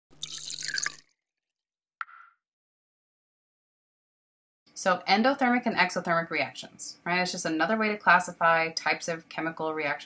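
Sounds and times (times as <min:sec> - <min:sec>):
liquid pouring into glass flask: 0:00.1 - 0:01.2.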